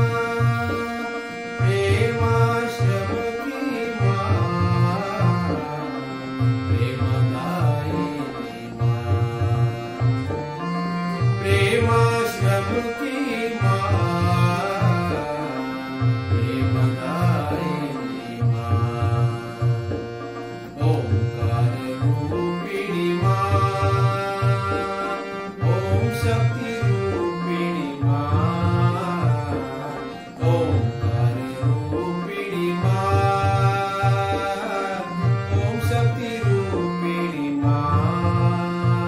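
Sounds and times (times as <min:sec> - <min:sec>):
harmonium melody: 0:00.0 - 0:39.0
man singing: 0:00.0 - 0:39.0
tabla-like drum rhythm: 0:00.0 - 0:39.0.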